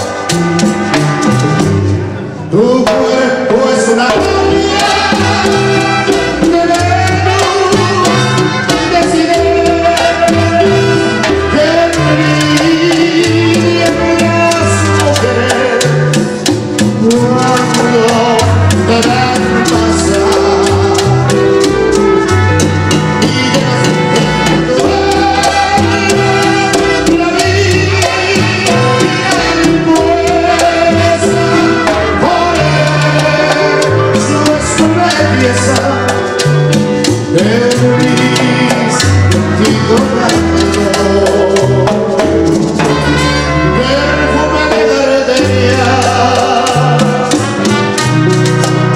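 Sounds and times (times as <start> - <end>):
horns holding long notes: 0.0 - 16.2, 17.0 - 48.9
live tropical band music: 0.0 - 48.9
percussion beat: 0.0 - 48.9.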